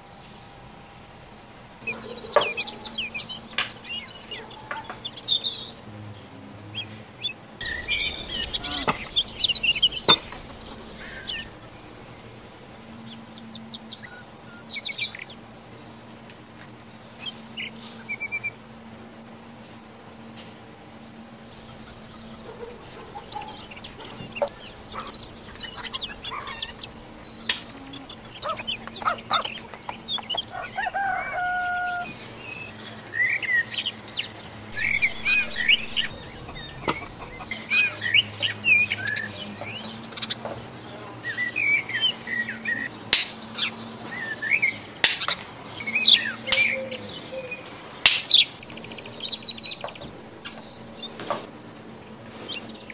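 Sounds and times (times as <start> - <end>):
birds chirping: 0.0 - 52.9
faint steady hum: 0.0 - 52.9
chicken clucking: 21.6 - 32.1, 34.8 - 38.6.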